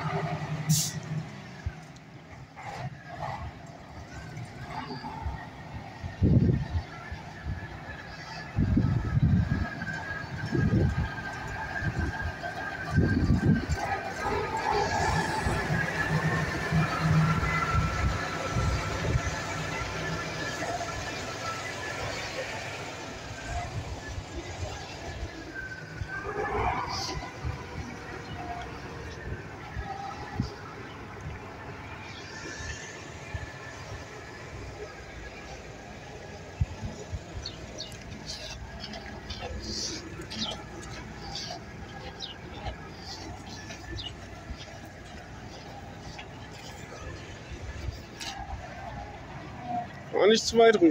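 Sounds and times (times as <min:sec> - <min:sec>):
diesel truck engine passing: 0:00.0 - 0:50.9.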